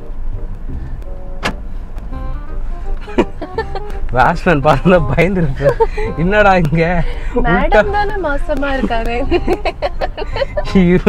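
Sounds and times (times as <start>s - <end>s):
background music: 0.0s - 11.0s
car engine and road noise: 0.0s - 11.0s
sharp hit: 0.6s - 2.5s.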